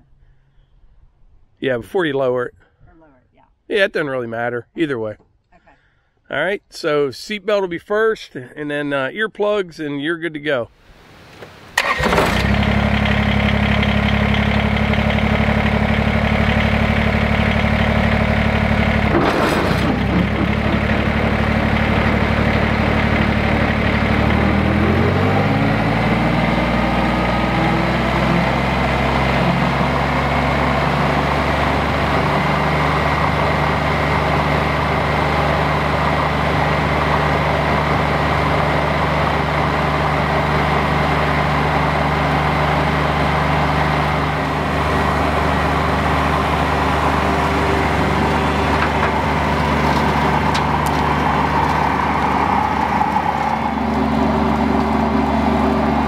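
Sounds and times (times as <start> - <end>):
tractor diesel engine running: 11.6 - 56.0
clunk: 19.1 - 21.1, 48.6 - 51.8.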